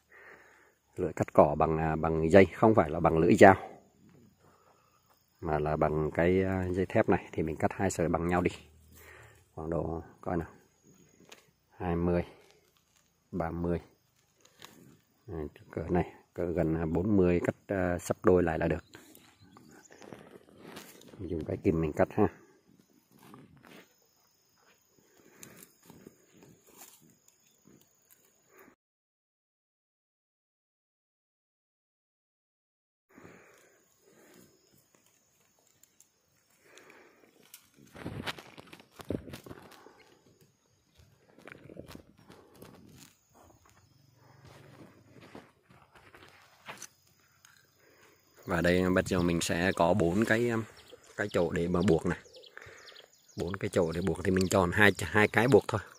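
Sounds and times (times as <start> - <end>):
wire rustling and scraping: 18.9 - 21.4, 22.9 - 24.0, 25.2 - 27.5, 34.1 - 48.0
steel wire rustling: 34.1 - 43.4.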